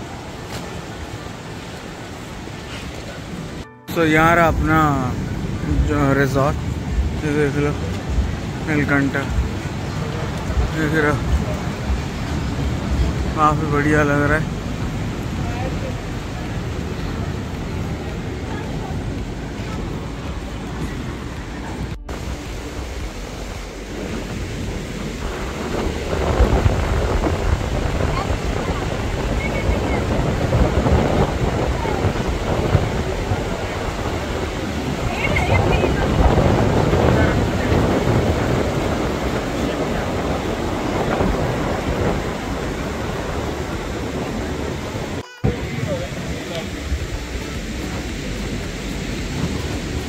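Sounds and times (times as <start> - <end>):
sea surf: 0.0 - 50.0
wind buffeting microphone: 4.2 - 50.0.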